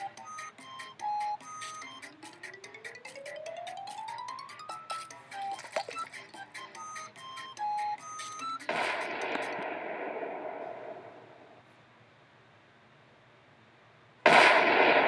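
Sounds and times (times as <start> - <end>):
explosion: 8.7 - 11.4, 14.3 - 15.0.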